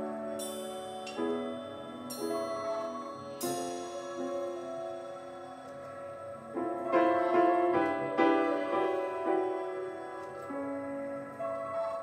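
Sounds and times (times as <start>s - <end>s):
grand piano notes: 0.0s - 12.0s.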